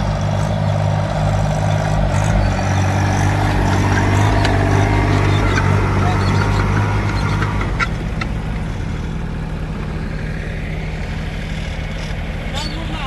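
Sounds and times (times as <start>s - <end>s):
tractor diesel engine running: 0.0s - 13.0s.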